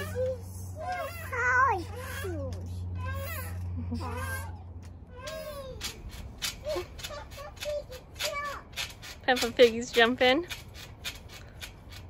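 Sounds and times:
toddler squealing: 0:00.0 - 0:08.6.

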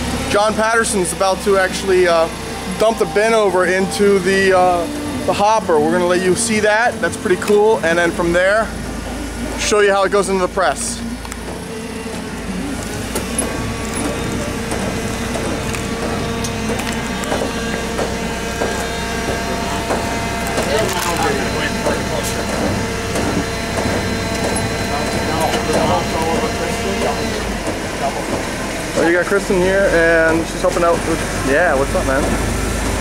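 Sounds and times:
forklift engine running: 0:00.0 - 0:33.0
hydraulic whine: 0:00.0 - 0:33.0.

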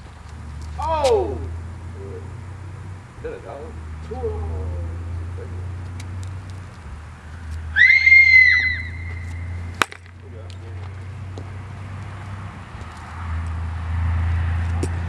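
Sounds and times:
sharp crack: 0:05.8 - 0:11.0
high-pitched wavering call: 0:07.7 - 0:09.6.

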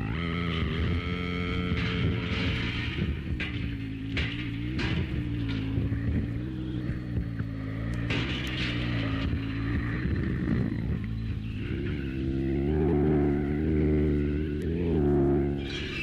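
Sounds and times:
low drone of held tones: 0:00.0 - 0:16.0.

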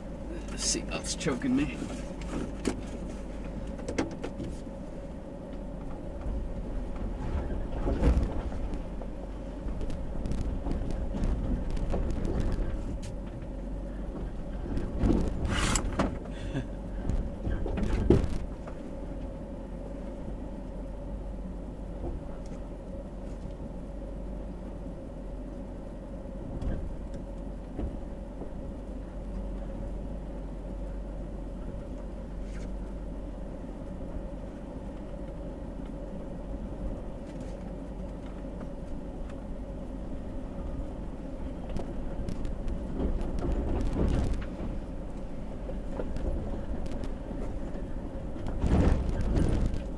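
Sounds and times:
truck engine running: 0:00.0 - 0:49.9
truck knocks and rattles: 0:02.1 - 0:04.7, 0:05.5 - 0:19.4, 0:21.8 - 0:22.7, 0:26.4 - 0:29.8, 0:40.3 - 0:49.9.

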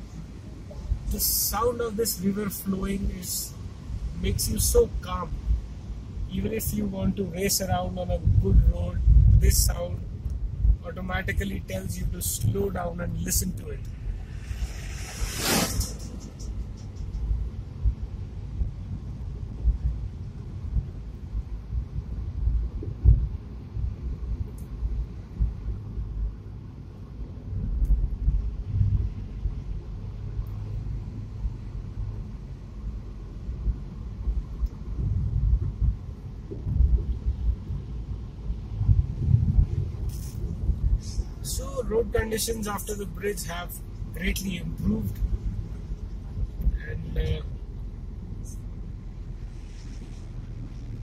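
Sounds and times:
car engine and road noise: 0:00.0 - 0:51.0
short burst of noise: 0:13.9 - 0:17.3.

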